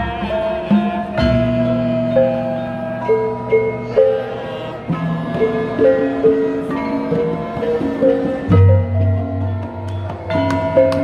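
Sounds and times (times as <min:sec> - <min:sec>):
gamelan metallophones ringing: 0:00.0 - 0:11.0.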